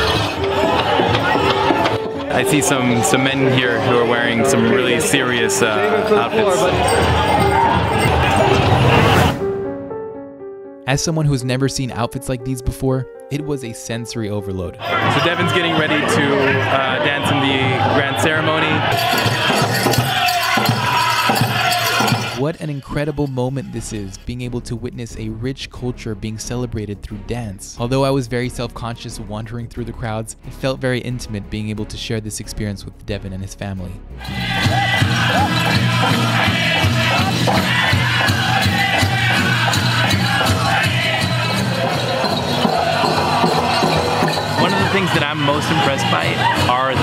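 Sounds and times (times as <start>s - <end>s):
crowd noise: 0.0s - 9.6s, 14.8s - 22.5s, 34.2s - 47.0s
high-pitched group vocals: 14.8s - 22.5s, 34.2s - 47.0s
steady drumbeat: 15.0s - 22.4s, 34.2s - 47.0s.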